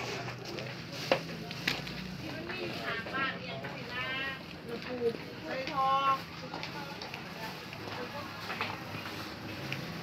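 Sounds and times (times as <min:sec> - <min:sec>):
indistinct voices in market: 0:00.0 - 0:10.0.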